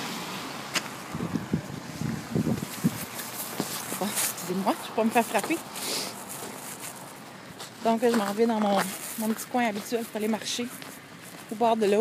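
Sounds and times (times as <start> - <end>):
person speaking: 3.8 - 5.6, 7.8 - 10.8.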